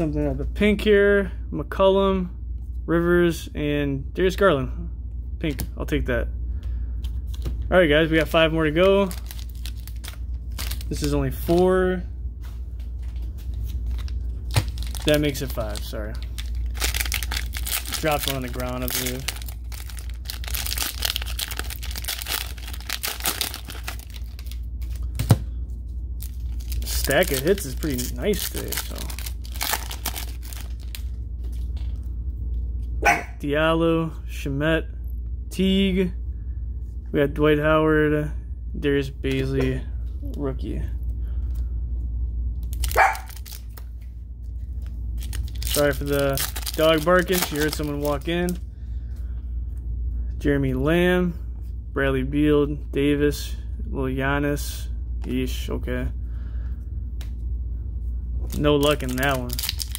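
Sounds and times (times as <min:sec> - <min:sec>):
cellophane wrapper crinkling: 0:08.0 - 0:11.8, 0:12.9 - 0:25.3, 0:26.2 - 0:32.1, 0:42.6 - 0:48.6, 0:58.4 - 0:59.9
dog barking: 0:33.0 - 0:33.4, 0:43.0 - 0:43.3.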